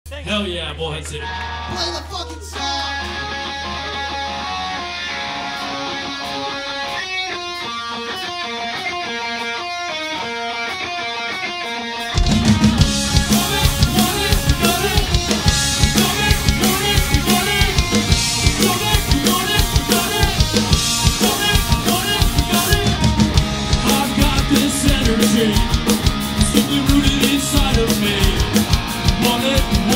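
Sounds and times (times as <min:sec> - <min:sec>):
rock band playing loud: 0:00.1 - 0:29.9
electric guitar intro: 0:00.3 - 0:29.9.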